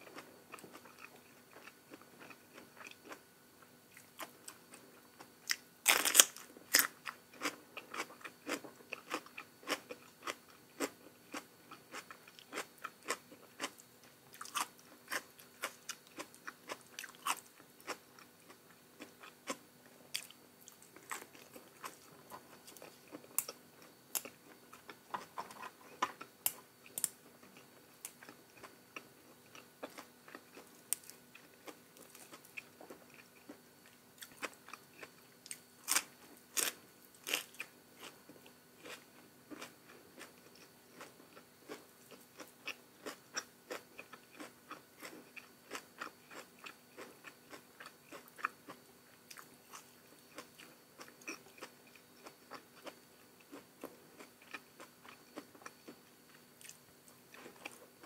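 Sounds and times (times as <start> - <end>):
person chewing crunchy food: 0.0 - 3.2, 3.9 - 58.0
faint steady hum: 0.0 - 58.0.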